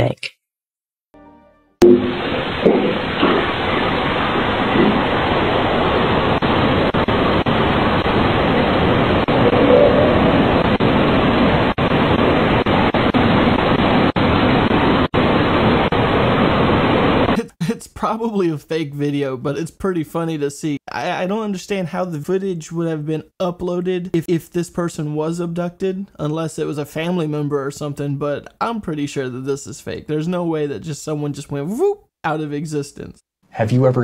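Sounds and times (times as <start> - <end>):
steady rushing noise: 1.8 - 17.4.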